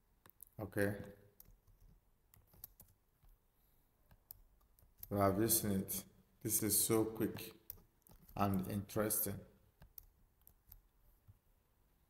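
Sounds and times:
mouse and keyboard clicks: 1.4s - 3.4s, 7.3s - 8.7s.

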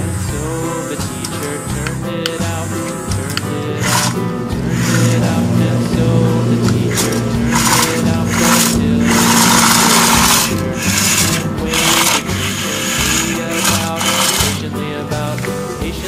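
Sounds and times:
toy electric motor whirring: 0.0s - 5.4s, 6.7s - 14.7s
background music: 0.0s - 16.0s.

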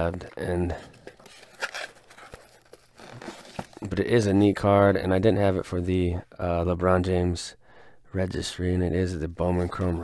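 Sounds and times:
bubble wrap and paper crinkling: 0.0s - 4.3s, 9.4s - 10.0s.

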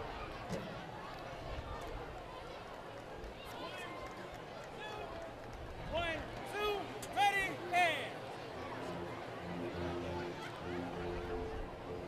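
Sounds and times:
stadium crowd murmur: 0.0s - 12.0s.

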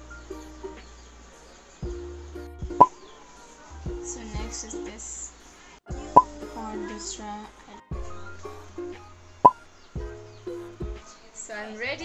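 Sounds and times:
soft background music: 0.0s - 12.0s
low bass thumps: 1.8s - 3.0s, 3.8s - 4.7s, 7.9s - 11.0s.

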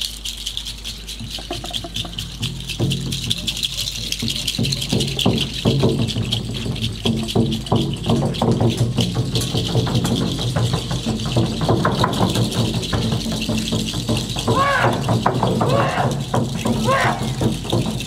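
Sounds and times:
rattle shaken fast: 0.0s - 18.0s
voices singing together: 14.5s - 17.6s.

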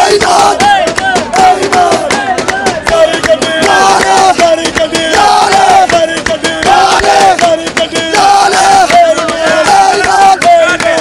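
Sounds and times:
clapping to the beat: 0.0s - 11.0s
men chanting along: 0.0s - 11.0s.

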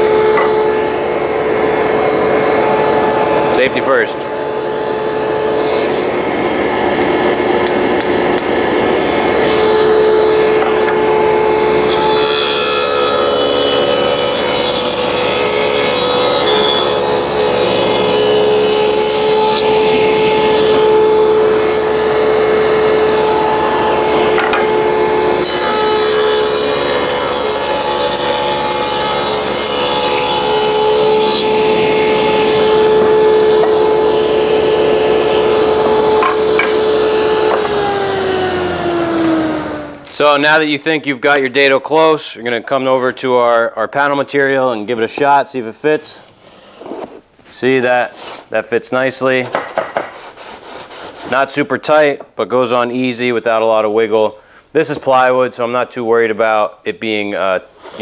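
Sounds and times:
saw blade cutting wood: 0.0s - 40.0s, 49.4s - 51.6s, 57.8s - 58.0s
table saw whine: 0.0s - 42.1s.

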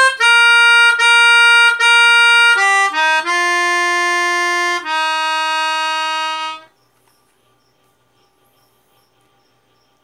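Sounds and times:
melodica holding a note: 0.0s - 6.7s.

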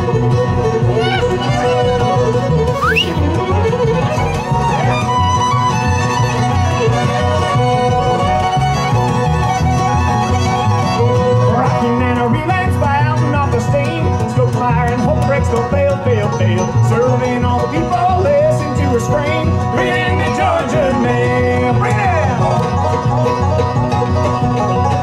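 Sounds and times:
acoustic guitar: 0.0s - 25.0s
banjo: 0.0s - 25.0s
fiddle playing lead: 0.0s - 25.0s
upright bass: 0.0s - 25.0s.

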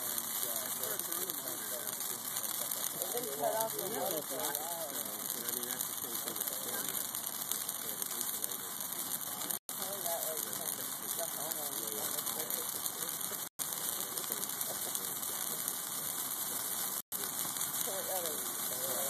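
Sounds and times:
bonfire flames rushing: 0.0s - 19.0s
faint voices talking: 0.0s - 19.0s.

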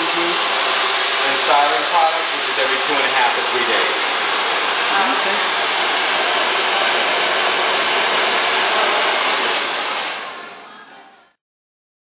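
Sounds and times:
hair dryer blowing: 0.0s - 10.8s.

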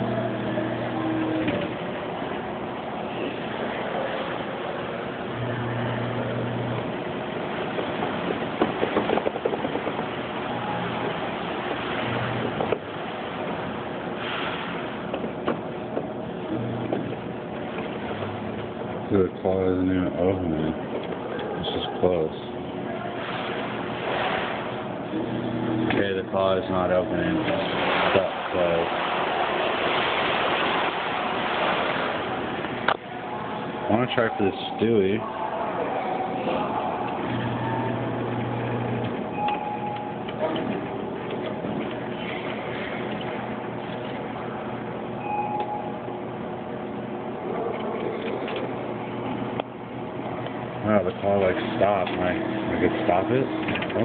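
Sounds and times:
short beep: 39.3s - 40.2s, 45.2s - 46.1s
claw machine motor running: 47.6s - 54.0s
claw machine motor whirring: 51.1s - 54.0s.

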